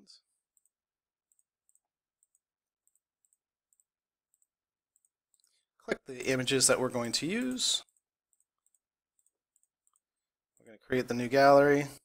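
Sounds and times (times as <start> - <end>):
computer mouse clicks: 0.5 - 5.6, 6.6 - 10.7.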